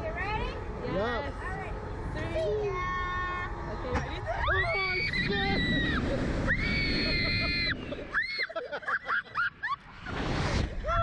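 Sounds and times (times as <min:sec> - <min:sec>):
wind rushing over microphone: 0:00.0 - 0:08.2, 0:09.9 - 0:11.0.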